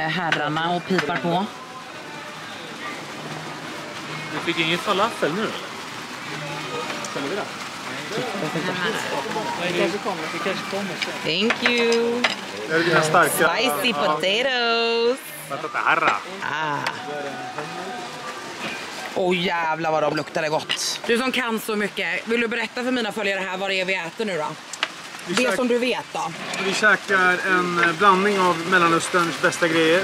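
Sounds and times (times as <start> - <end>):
people talking: 0.0 - 1.5, 6.3 - 18.4, 25.3 - 30.0
faint background voices: 0.0 - 19.2
hookah water bubbling: 0.0 - 30.0.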